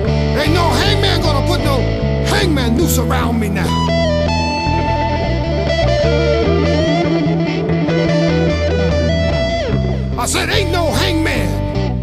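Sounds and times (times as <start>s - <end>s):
sliding blues guitar notes: 0.0s - 12.0s
steady low bass line: 0.0s - 12.0s.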